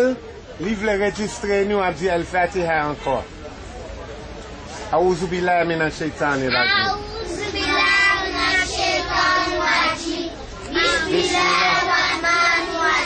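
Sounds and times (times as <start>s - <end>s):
children singing in unison: 6.8s - 13.0s.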